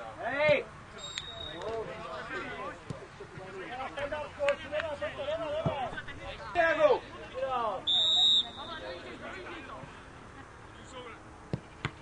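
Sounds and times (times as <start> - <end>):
referee's whistle blast: 1.0 - 1.6, 7.9 - 8.8.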